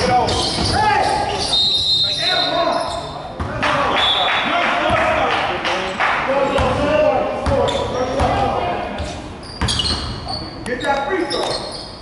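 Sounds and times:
voices chattering and echoing: 0:00.0 - 0:12.0.

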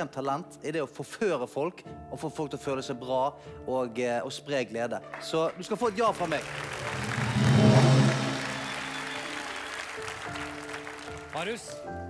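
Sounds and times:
background music with held notes: 0:00.0 - 0:12.0
audience applauding: 0:05.0 - 0:11.8.

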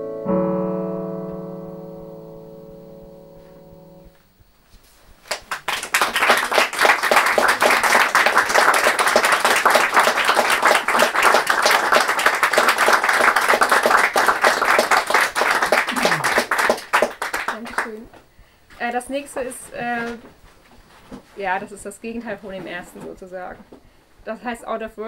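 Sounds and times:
audience applauding: 0:05.2 - 0:18.1.

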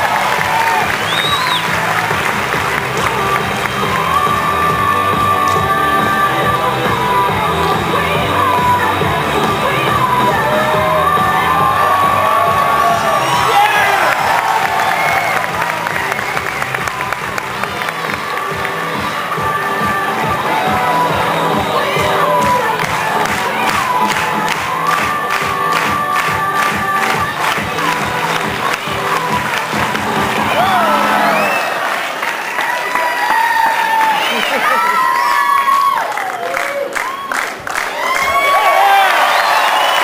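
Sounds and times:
loud performance music: 0:00.0 - 0:32.3
audience cheering and shouting: 0:00.0 - 0:40.0.

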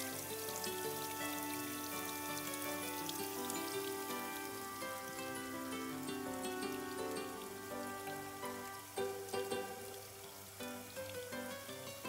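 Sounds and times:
background music: 0:00.0 - 0:12.0
waterfall splashing over rocks: 0:00.0 - 0:12.0.

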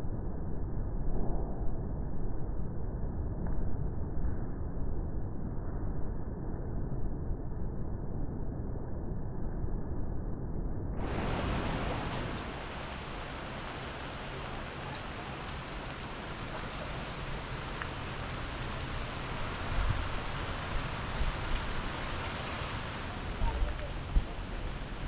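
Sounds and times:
heavy rain on foliage: 0:11.0 - 0:25.0.

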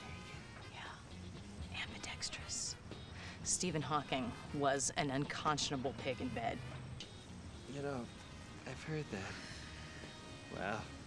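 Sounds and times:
low steady drone: 0:00.0 - 0:11.0.

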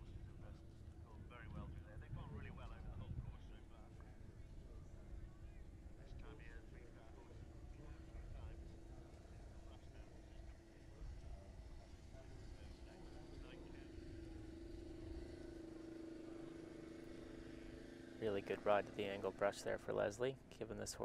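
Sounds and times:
engine hum: 0:00.0 - 0:21.0
faint distant voices: 0:00.0 - 0:21.0
low wind rumble: 0:00.0 - 0:21.0.

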